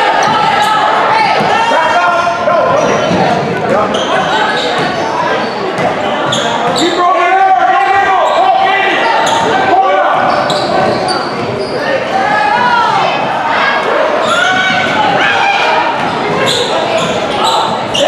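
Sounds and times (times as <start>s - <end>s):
voices of players and onlookers: 0.0s - 18.0s
sneakers squeaking on court: 2.7s - 7.0s, 10.2s - 12.1s, 16.0s - 18.0s.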